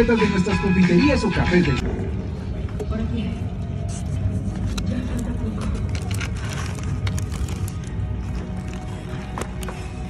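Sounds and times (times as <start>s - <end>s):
music over loudspeakers: 0.0s - 2.0s
heavy low rumble: 1.7s - 10.0s
paper wrapper crackling: 5.6s - 9.7s.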